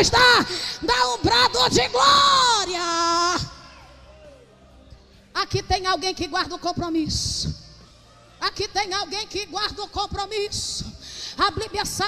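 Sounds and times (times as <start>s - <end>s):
woman shouting through pa: 0.0s - 3.6s.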